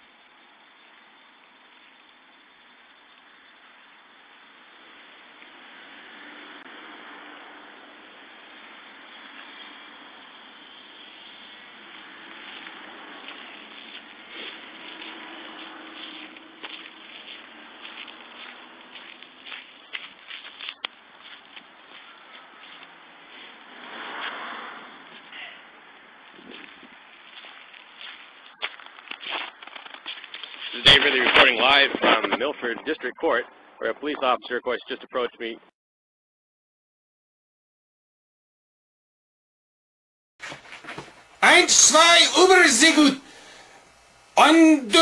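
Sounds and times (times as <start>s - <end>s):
steady outdoor hiss: 0.0s - 35.7s, 40.4s - 45.0s
irregular clicks and rustles: 26.4s - 32.4s.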